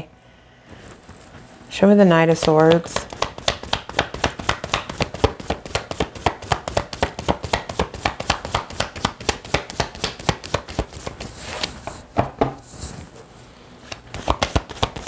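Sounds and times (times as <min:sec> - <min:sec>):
cards being shuffled: 0:02.4 - 0:11.8, 0:13.9 - 0:15.0.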